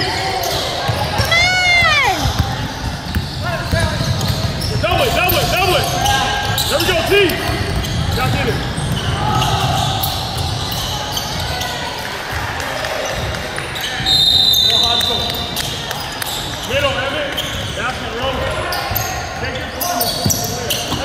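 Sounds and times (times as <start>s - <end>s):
players shouting in a hall: 0.0s - 2.7s, 9.0s - 15.1s
basketball bouncing on court: 0.0s - 21.0s
referee's whistle: 13.8s - 15.5s.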